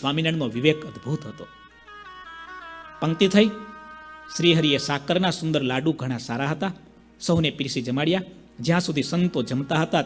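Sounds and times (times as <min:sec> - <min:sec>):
man talking into a microphone: 0:00.0 - 0:01.6, 0:03.0 - 0:03.7, 0:04.3 - 0:10.0.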